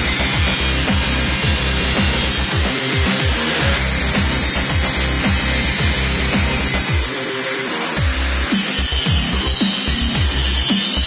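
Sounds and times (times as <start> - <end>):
angle grinder cutting steel rod: 0.0 - 11.0
electronic music with steady beat: 0.0 - 11.0.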